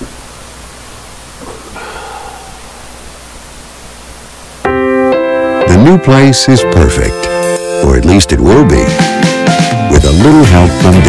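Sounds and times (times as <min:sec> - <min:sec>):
steady recording hiss: 0:00.0 - 0:11.0.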